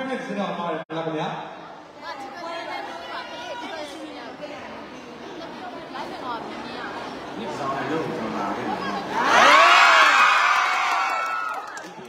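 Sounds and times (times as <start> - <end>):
background chatter: 1.4 - 9.9.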